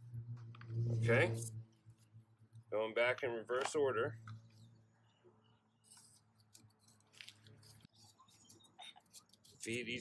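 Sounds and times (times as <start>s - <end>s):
gloved hand handling plastic parts: 5.8s - 10.0s.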